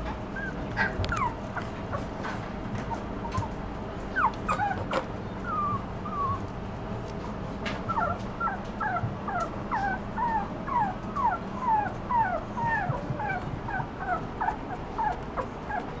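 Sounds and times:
puppy whimpering: 0.3s - 6.5s, 7.8s - 16.0s.

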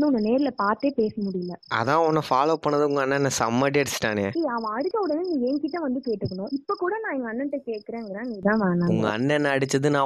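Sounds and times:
cricket chirping: 0.0s - 8.4s.

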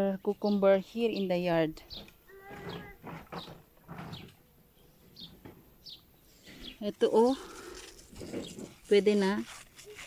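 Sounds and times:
distant animal call: 2.0s - 4.3s.

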